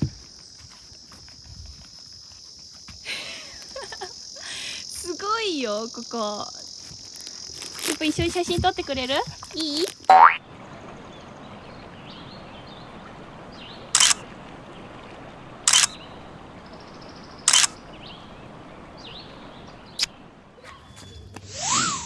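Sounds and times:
faint outdoor background: 0:00.0 - 0:22.0
falling boing sound effect: 0:10.1 - 0:10.4
camera shutter clicks: 0:14.0 - 0:14.2, 0:15.7 - 0:16.0, 0:17.5 - 0:17.7.

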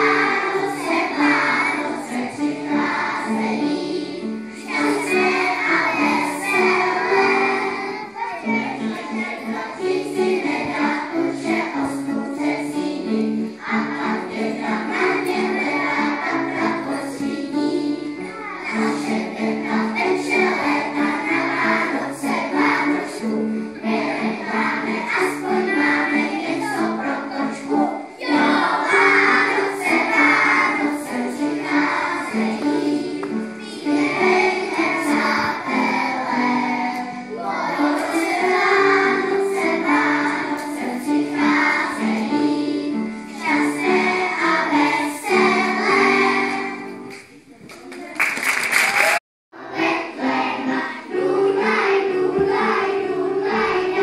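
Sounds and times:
children singing in chorus: 0:00.0 - 0:47.2, 0:49.6 - 0:54.0.

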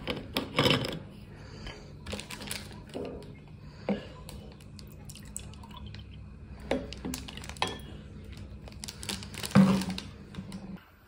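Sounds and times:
juice pouring into a glass: 0:04.6 - 0:09.9.

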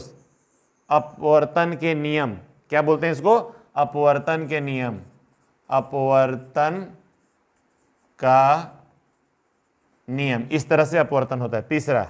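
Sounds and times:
marker writing on whiteboard: 0:00.0 - 0:02.0, 0:03.9 - 0:12.0.

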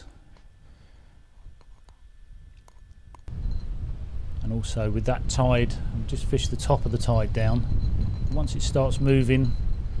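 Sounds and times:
wind rumbling on microphone: 0:02.2 - 0:10.0.

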